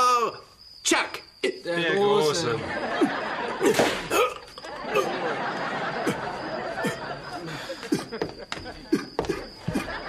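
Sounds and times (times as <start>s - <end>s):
studio audience laughing: 2.6s - 3.8s, 4.6s - 9.0s, 9.6s - 10.0s.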